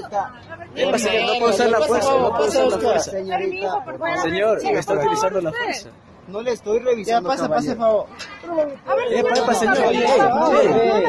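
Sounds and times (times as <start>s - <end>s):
people arguing loudly: 0.0s - 11.0s.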